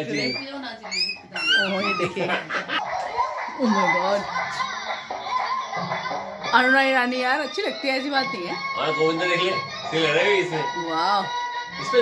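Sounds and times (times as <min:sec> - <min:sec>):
pet whining: 0:00.0 - 0:02.1.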